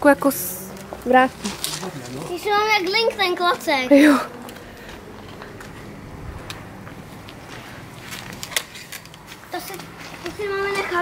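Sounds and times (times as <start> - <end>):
foliage rustling: 0.4 - 11.0.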